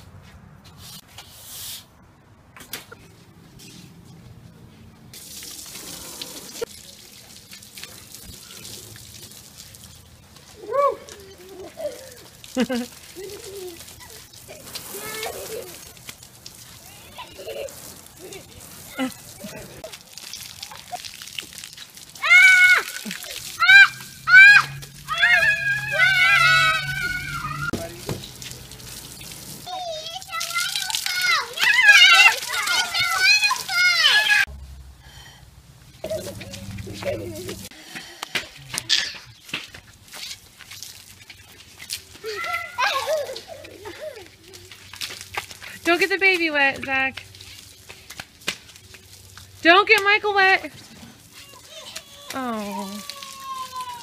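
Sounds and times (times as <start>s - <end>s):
garden hose spray hissing: 5.1s - 54.0s
children calling and laughing: 10.4s - 34.5s, 35.9s - 39.8s, 40.8s - 46.1s, 50.6s - 54.0s
children squealing and shrieking: 10.6s - 12.3s, 13.1s - 15.9s, 22.2s - 27.8s, 29.6s - 34.5s, 42.1s - 44.8s, 51.3s - 54.0s.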